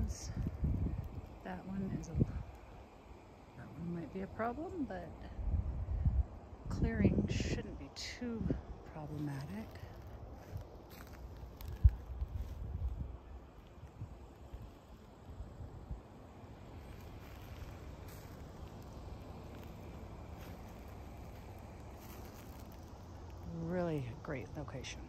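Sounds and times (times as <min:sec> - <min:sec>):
faint low rumble: 0:00.0 - 0:25.0
footsteps on dry ground: 0:09.1 - 0:15.2, 0:16.7 - 0:23.6.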